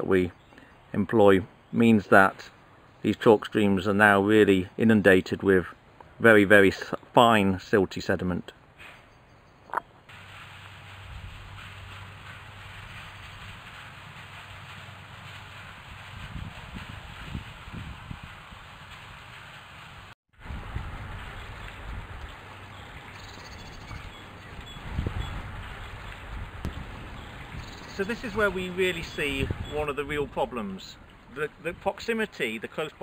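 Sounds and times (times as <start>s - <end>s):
steady hiss: 10.1s - 33.0s
wind rumbling on microphone: 10.8s - 32.0s.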